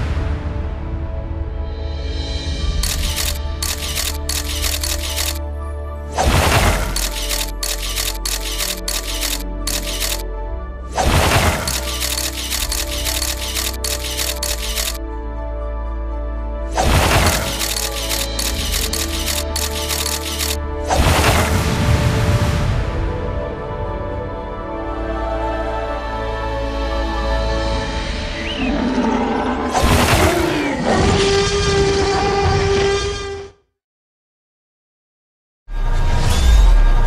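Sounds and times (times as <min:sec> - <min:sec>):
camera shutter clicks: 0:02.8 - 0:05.4, 0:06.5 - 0:10.2, 0:11.2 - 0:15.0, 0:17.0 - 0:20.6
background music held chord: 0:10.2 - 0:11.7, 0:15.0 - 0:17.5, 0:20.6 - 0:28.5.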